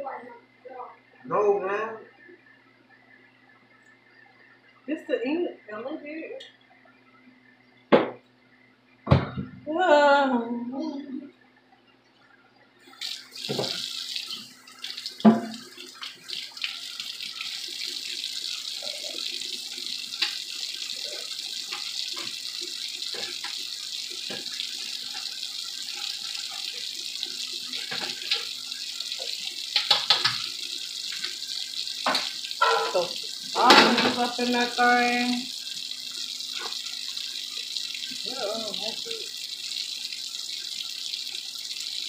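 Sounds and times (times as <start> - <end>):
water boiling with hiss: 12.8 - 42.0.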